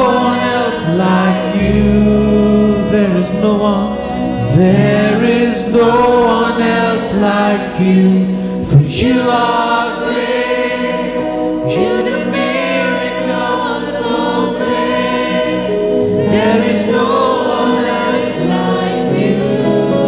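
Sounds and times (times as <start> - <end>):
group singing praise song: 0.0 - 20.0
keyboard: 0.0 - 20.0.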